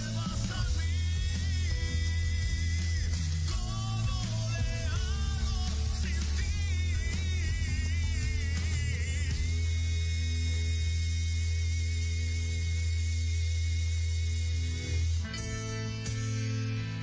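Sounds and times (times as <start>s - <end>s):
guitar music: 0.0s - 11.6s, 14.6s - 17.0s
heavy steady bass: 0.0s - 17.0s.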